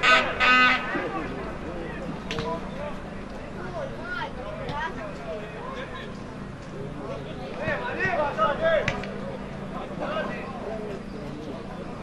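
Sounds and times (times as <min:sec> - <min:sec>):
football crowd shouting: 0:07.2 - 0:11.1.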